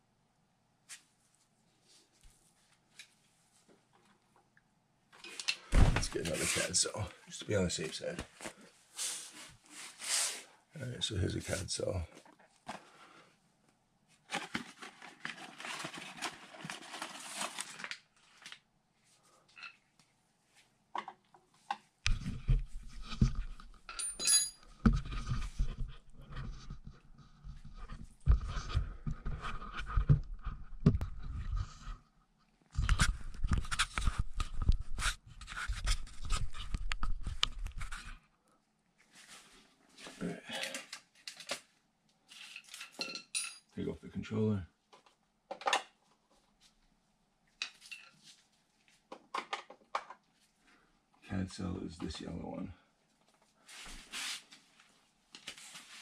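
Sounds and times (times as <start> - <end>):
rustling: 14.1 - 19.4
camera handling bumps and rumbles: 22.1 - 23.8
metal tools clicking and clinking: 23.9 - 24.6, 42.6 - 43.7.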